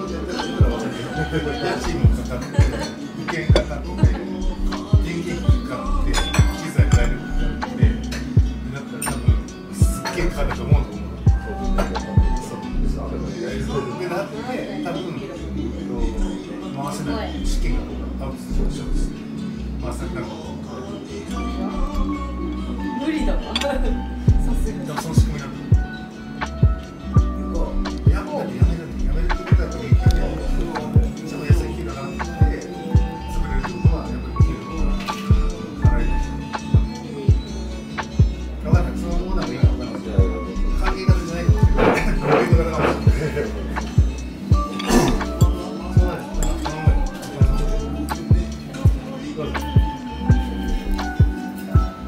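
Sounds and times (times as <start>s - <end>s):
hip-hop music: 0.0s - 19.8s, 20.5s - 52.0s.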